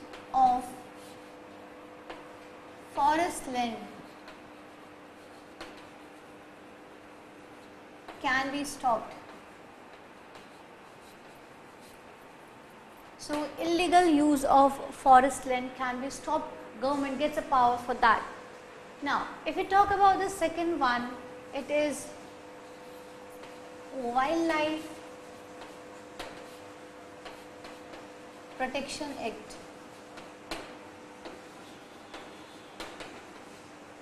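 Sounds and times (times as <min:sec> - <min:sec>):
faint steady hum: 0:00.0 - 0:34.0
chalk scratching on blackboard: 0:00.9 - 0:01.4, 0:04.0 - 0:06.4, 0:09.8 - 0:13.1, 0:24.8 - 0:29.2.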